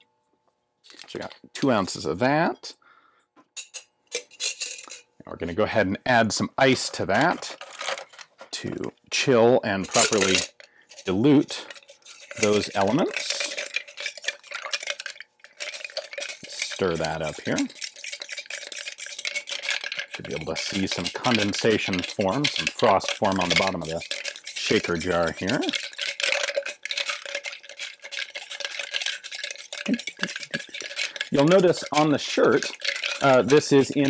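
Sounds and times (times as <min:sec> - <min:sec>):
ice rattling in metal shaker: 0:06.6 - 0:08.8, 0:09.7 - 0:34.0.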